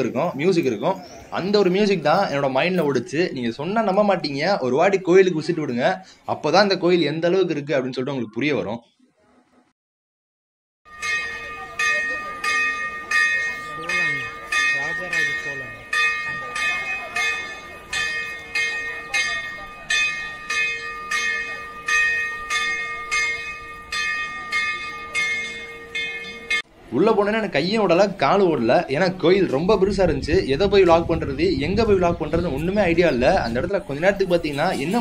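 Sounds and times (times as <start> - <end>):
temple bell ringing: 10.9 - 26.7.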